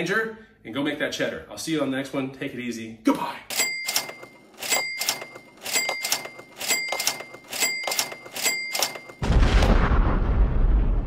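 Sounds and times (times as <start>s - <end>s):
sharp click with bell-like ring: 3.5s - 9.2s
loud boom with deep rumble: 9.2s - 11.0s.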